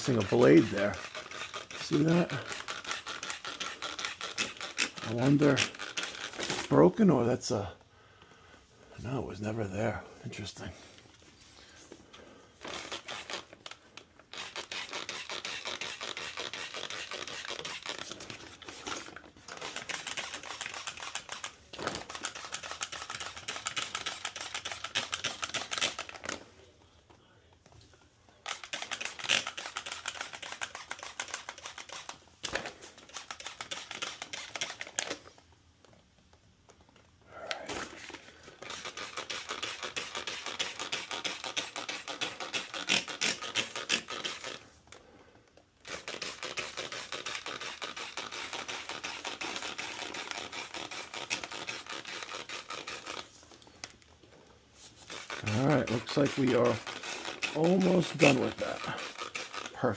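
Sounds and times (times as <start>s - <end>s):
trigger spray bottle squeezing: 0.0s - 6.8s, 12.6s - 26.4s, 28.4s - 35.9s, 36.7s - 45.1s, 45.8s - 54.1s, 54.8s - 59.9s.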